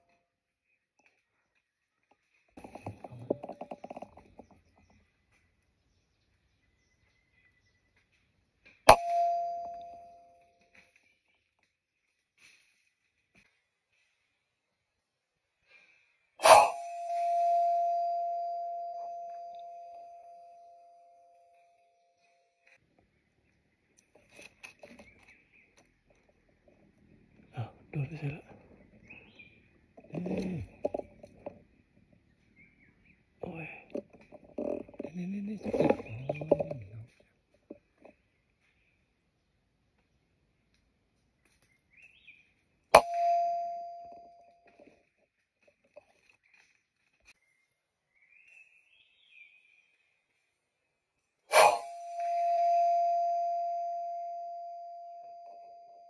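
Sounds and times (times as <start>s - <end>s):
bell-like ringing tone: 8.9s - 10.6s, 16.4s - 22.0s, 43.0s - 44.7s, 51.5s - 56.0s.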